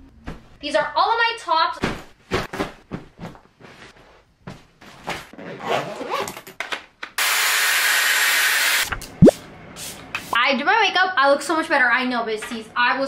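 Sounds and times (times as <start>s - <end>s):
clothes rustling: 1.8s - 5.3s.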